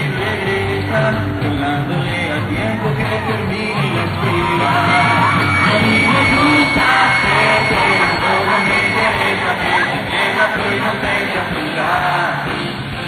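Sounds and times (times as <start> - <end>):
man singing: 0.0 - 12.7
pop-rock band playing: 0.0 - 13.0.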